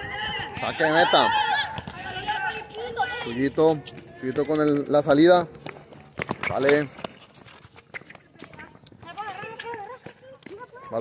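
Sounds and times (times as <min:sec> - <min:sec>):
running footsteps on concrete: 0:00.0 - 0:11.0.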